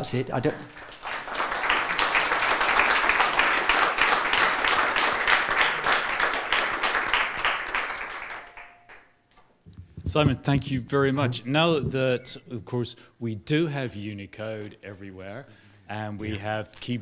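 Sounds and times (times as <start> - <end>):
audience applauding: 0.5 - 9.1.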